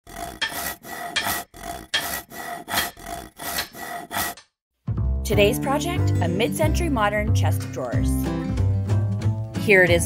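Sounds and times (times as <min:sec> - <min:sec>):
rhythmic rasping strokes: 0:00.0 - 0:04.4.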